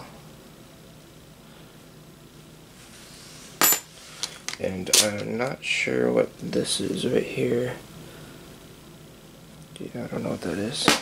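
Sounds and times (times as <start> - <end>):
key clinking on hard surface: 3.6 - 3.9.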